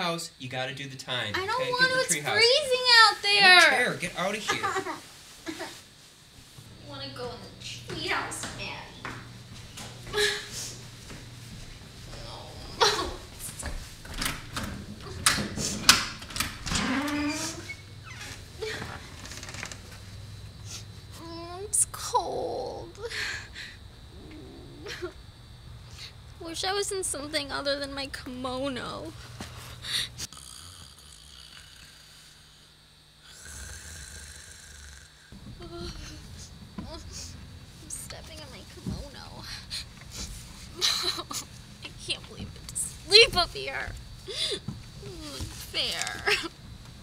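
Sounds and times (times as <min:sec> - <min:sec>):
steady low hum: 0:00.0 - 0:47.0
man snoring: 0:24.1 - 0:24.9, 0:30.2 - 0:35.4.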